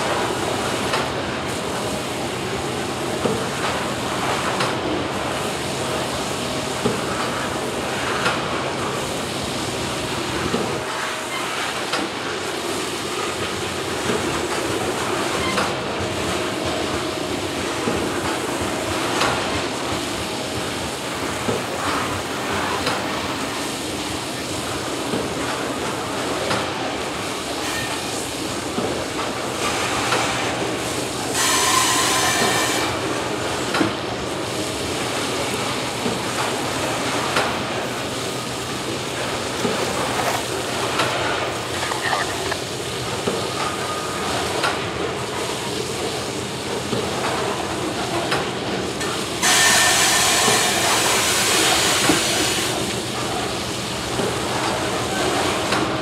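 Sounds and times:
hiss of sprayers: 16.2s - 56.0s
train wheels clattering on rails: 35.0s - 56.0s.

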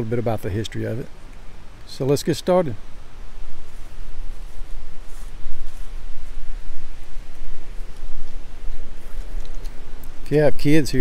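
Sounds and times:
wind buffeting microphone: 2.9s - 11.0s.

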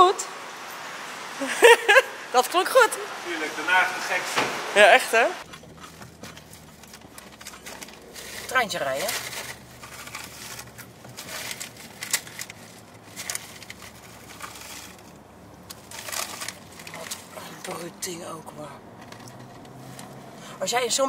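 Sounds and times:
cars driving slowly: 0.0s - 21.0s.

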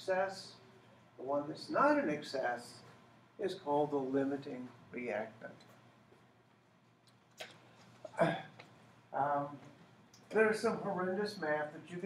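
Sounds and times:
faint mouth click: 7.0s - 7.6s.

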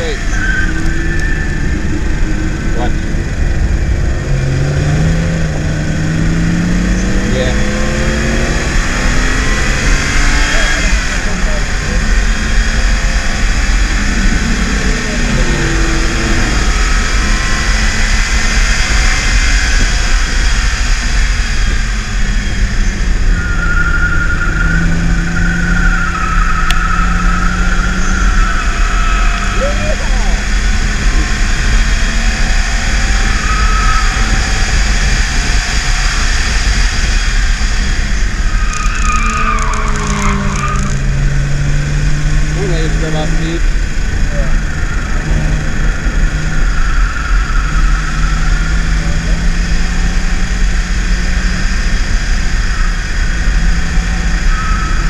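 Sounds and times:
car engine accelerating: 0.0s - 55.0s
road and wind noise: 0.0s - 55.0s.

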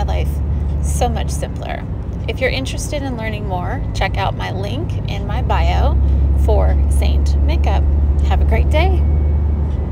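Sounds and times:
woman speaking: 0.0s - 9.0s
loud steady low hum: 0.0s - 9.9s.

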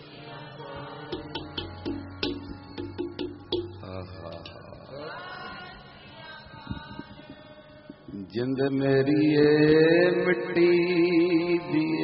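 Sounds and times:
man singing long notes: 3.5s - 5.7s.

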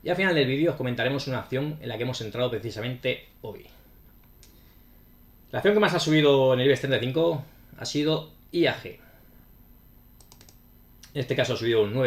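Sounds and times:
low steady background noise: 0.0s - 12.0s
keyboard keys tapping: 10.2s - 10.6s.

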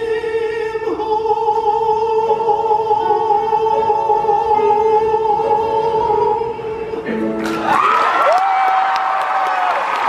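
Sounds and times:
piano: 0.0s - 10.0s
audience applause and cheering: 7.2s - 10.0s.

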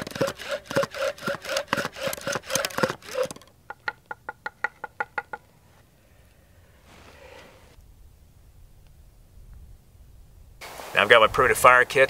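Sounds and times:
bow drill spindle squealing: 0.0s - 3.4s.

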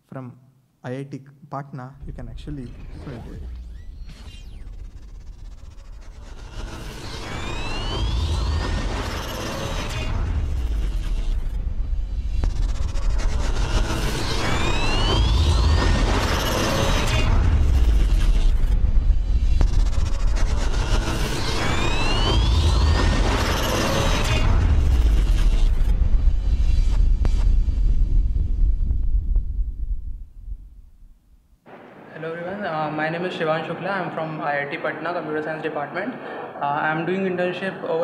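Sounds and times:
rising whoosh: 2.0s - 32.1s
deep pulsing bass rumble: 4.6s - 31.5s.

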